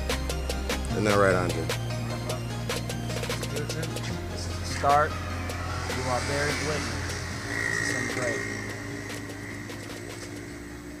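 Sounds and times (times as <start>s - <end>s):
outdoor background hum: 5.2s - 11.0s.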